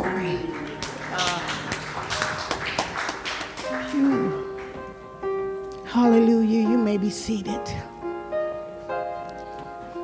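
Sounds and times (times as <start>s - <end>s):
sharp claps and taps: 0.6s - 4.8s.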